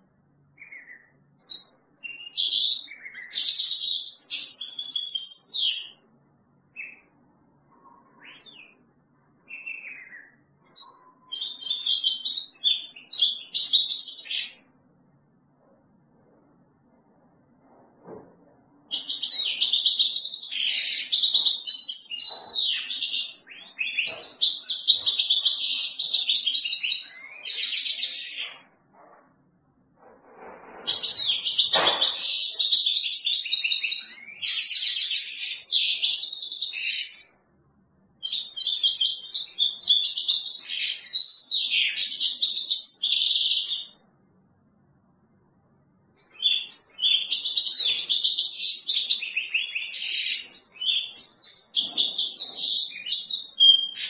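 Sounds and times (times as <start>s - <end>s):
goldfinch twittering song: 18.9s - 28.6s.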